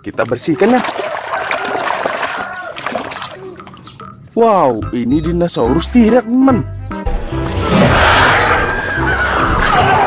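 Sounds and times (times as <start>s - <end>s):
water splashing: 0.0s - 4.1s
hand scrubbing toy in foamy water: 0.4s - 3.4s.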